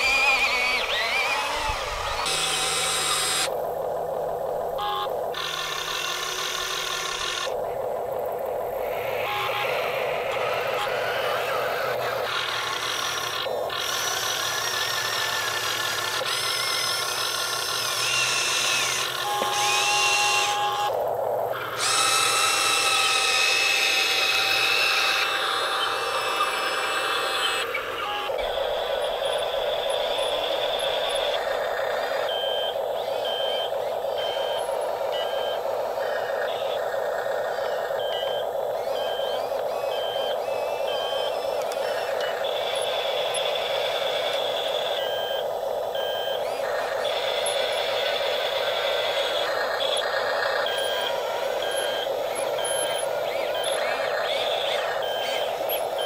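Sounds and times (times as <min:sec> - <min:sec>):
electric motors whining: 0:00.0 - 0:56.0
mechanical whir: 0:00.0 - 0:56.0
electronic beeping: 0:04.6 - 0:21.0, 0:32.0 - 0:56.0.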